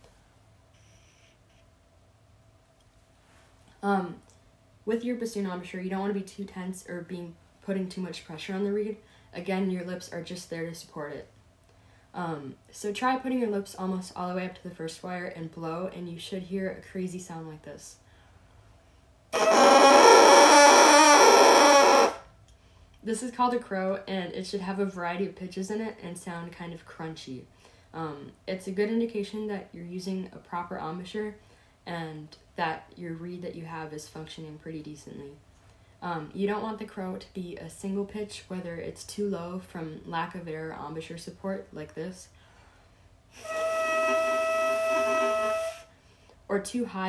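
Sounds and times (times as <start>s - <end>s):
bassoon reed crowing buzz: 19.4s - 22.2s, 43.4s - 45.8s.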